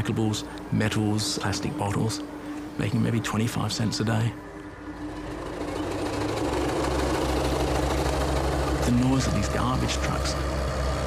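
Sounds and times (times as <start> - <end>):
heavy diesel engine throbbing: 0.0 - 11.0.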